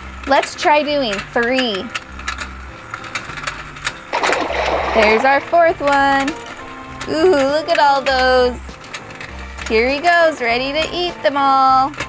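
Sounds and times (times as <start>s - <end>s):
toy gears clicking: 0.1s - 12.0s
water splash sound effect: 4.1s - 5.6s.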